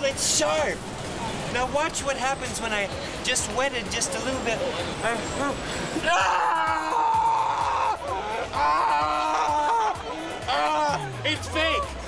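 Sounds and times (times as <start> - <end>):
man's high-pitched mock cry: 6.0 - 11.9.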